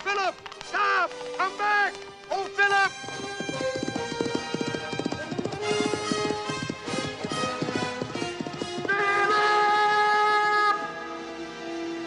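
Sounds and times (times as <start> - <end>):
horse hooves galloping: 0.0 - 10.2
orchestral film score: 8.9 - 12.0.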